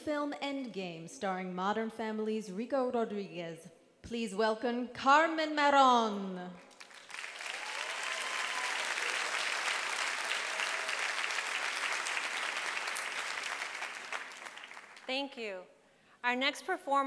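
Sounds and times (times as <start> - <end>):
audience applauding: 6.7 - 15.1.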